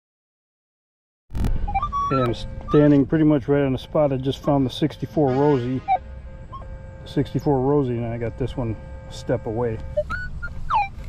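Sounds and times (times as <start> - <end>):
low rumble: 1.3 - 4.0
metal detector beeps: 1.4 - 11.0.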